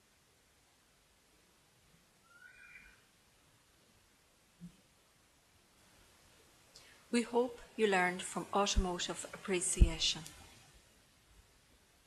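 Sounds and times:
faint high chirp: 2.2 - 3.1.

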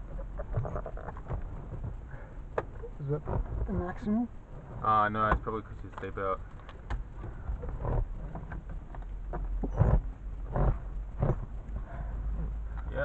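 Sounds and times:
low cockpit rumble: 0.0 - 13.0.

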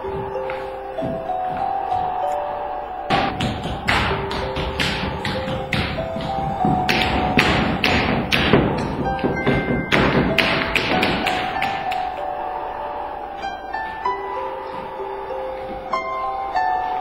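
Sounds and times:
music with slow held melody: 0.0 - 17.0
broom handles tapping wooden floor: 3.1 - 12.1.

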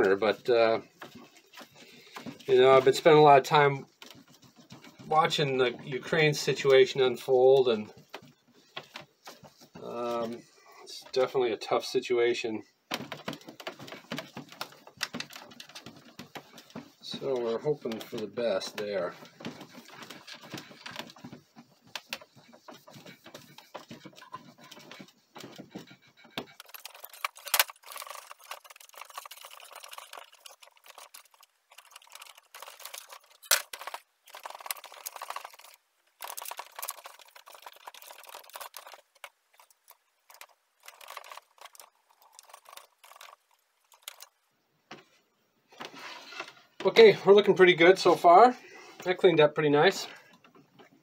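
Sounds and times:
cloth wiping metal: 15.9 - 27.4.

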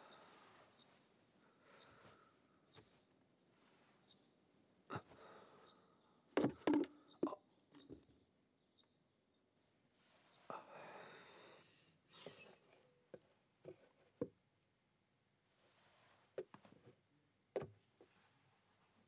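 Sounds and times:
blanket rustling: 0.0 - 4.2, 15.5 - 16.8
knocks and thumps: 6.4 - 8.0.

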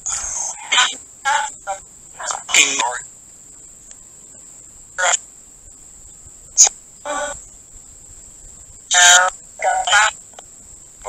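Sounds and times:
low hiss: 0.0 - 11.0
chopped radio voice fragments: 0.1 - 3.1, 5.0 - 5.2, 6.6 - 7.4, 8.9 - 10.4.

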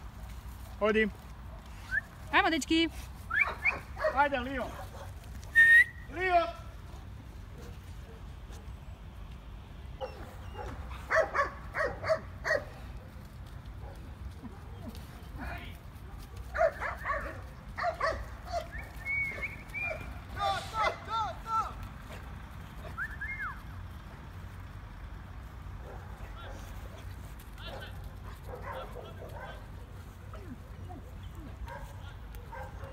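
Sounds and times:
dog barking: 3.4 - 5.1, 10.0 - 12.8, 16.5 - 18.7, 25.8 - 26.7, 27.7 - 29.7, 31.6 - 32.9.

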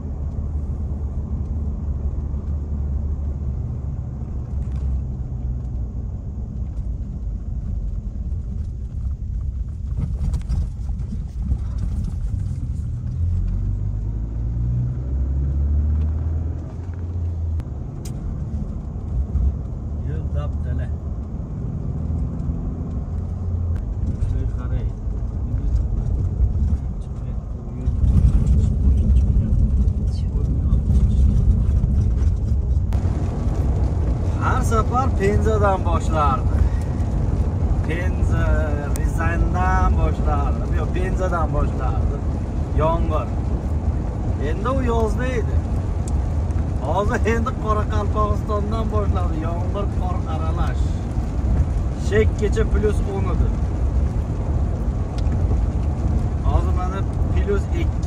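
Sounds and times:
car road noise rumble: 0.0 - 58.0.

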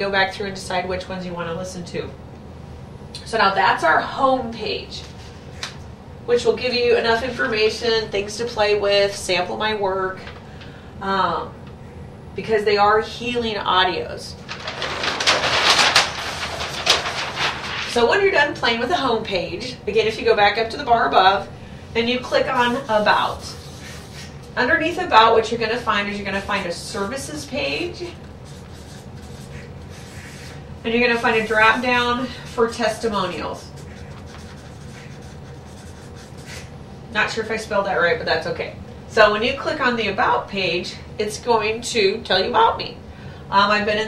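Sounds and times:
paper crackle: 14.4 - 18.1
paper sheet rustling: 14.4 - 18.3
marker pen scratching on paper: 22.4 - 24.3, 28.4 - 36.7.

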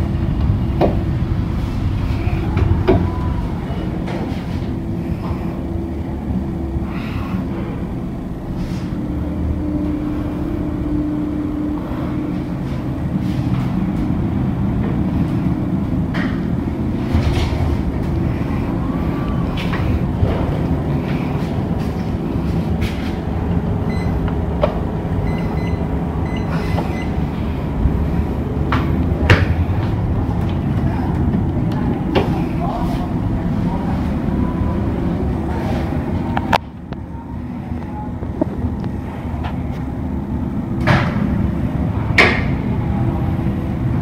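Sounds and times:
elevator rumble and hum: 0.0 - 44.0.

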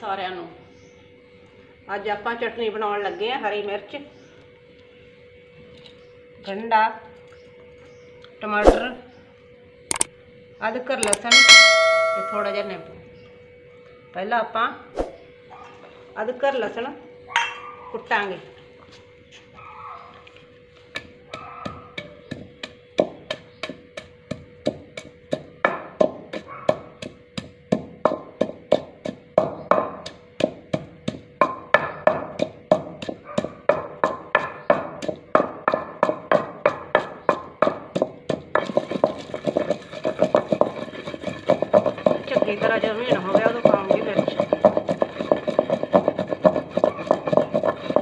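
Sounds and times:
pestle pounding in a mortar: 11.0 - 12.7, 20.9 - 48.0.

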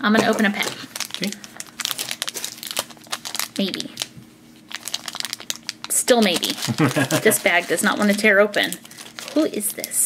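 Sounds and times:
foil bag crinkling: 0.0 - 10.0.

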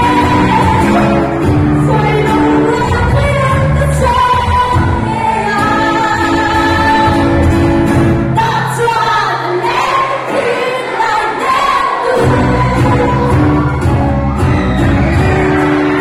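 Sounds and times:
drums: 0.0 - 8.6, 12.1 - 16.0
electric guitars: 0.0 - 8.6, 12.2 - 16.0
bass: 0.0 - 9.2, 12.2 - 16.0
vocals: 0.0 - 14.2.

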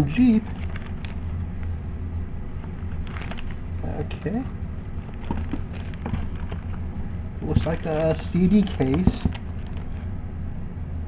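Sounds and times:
steady low hum: 0.0 - 11.0
plastic packaging crinkling: 0.1 - 1.4, 2.6 - 10.1.

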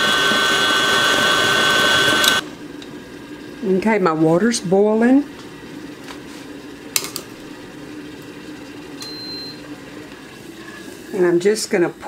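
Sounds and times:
kettle water boiling: 0.0 - 12.0
short high beep: 9.0 - 9.6.

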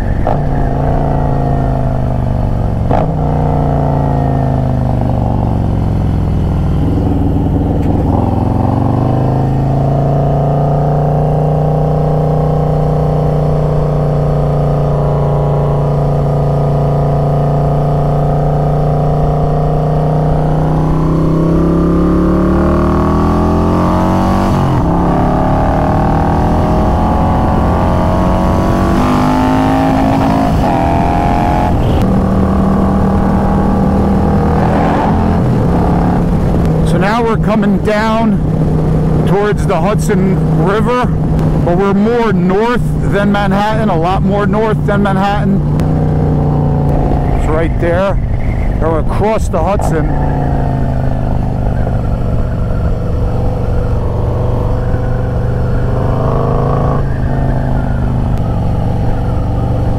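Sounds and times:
motorcycle engine while riding: 0.0 - 59.9.

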